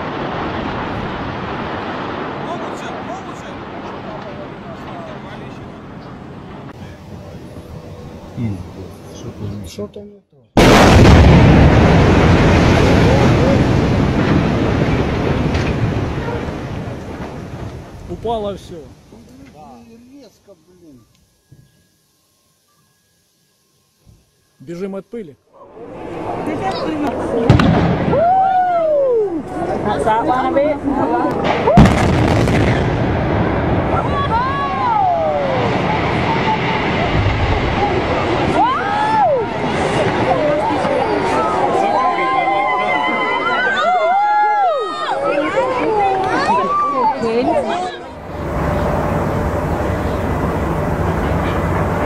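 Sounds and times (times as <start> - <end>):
demolition blast: 0.0 - 5.5, 10.6 - 18.9, 25.8 - 28.8, 31.3 - 42.1, 48.2 - 52.0
building collapsing rumble: 0.0 - 9.5, 10.6 - 19.1, 25.6 - 44.7, 47.9 - 52.0.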